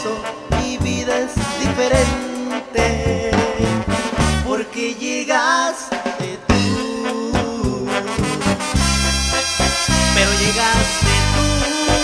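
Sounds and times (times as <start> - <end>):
upbeat latin praise song: 0.0 - 12.0.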